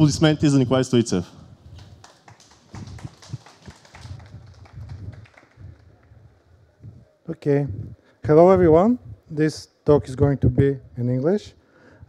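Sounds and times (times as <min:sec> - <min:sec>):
sparse audience clapping: 0:01.7 - 0:06.2.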